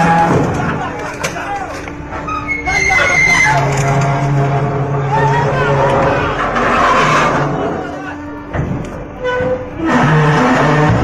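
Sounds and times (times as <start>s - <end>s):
men shouting: 2.5s - 8.4s.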